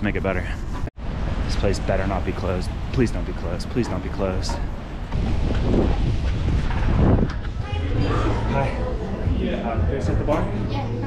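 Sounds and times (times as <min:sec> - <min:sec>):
wind buffeting microphone: 0:00.6 - 0:09.4.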